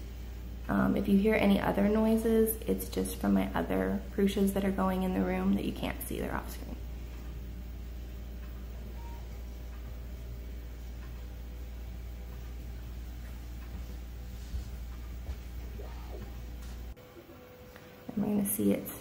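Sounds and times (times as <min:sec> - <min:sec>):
faint motor and fan whirring: 0:00.0 - 0:19.0
three d printers humming: 0:06.2 - 0:19.0.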